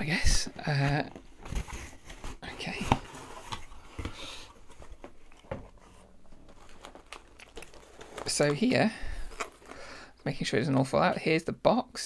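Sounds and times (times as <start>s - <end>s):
cardboard box being opened: 0.8s - 9.7s.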